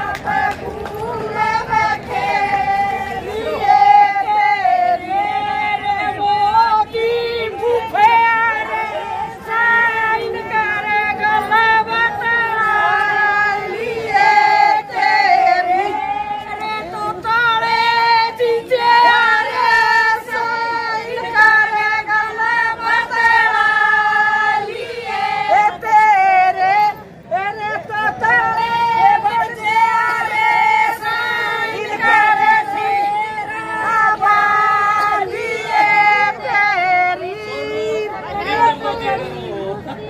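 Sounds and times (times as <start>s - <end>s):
women singing a mourning lament: 0.0s - 40.0s.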